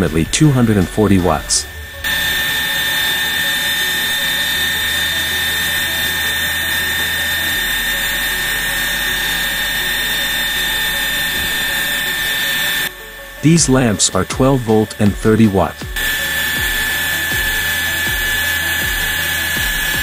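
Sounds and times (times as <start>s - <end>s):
steam turbine hissing and whining: 0.0s - 20.0s.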